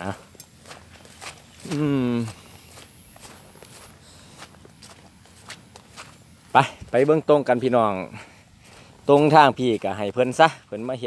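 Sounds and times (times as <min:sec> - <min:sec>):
footsteps through grass: 0:00.0 - 0:11.0.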